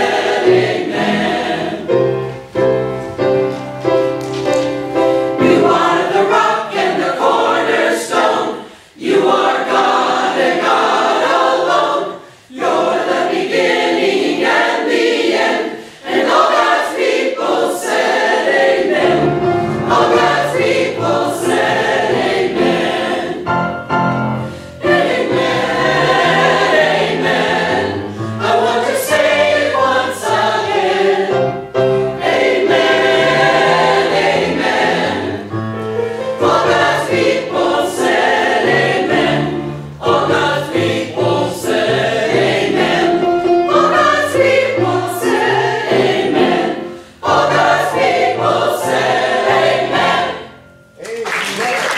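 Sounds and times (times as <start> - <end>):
church choir singing: 0.0 - 50.9.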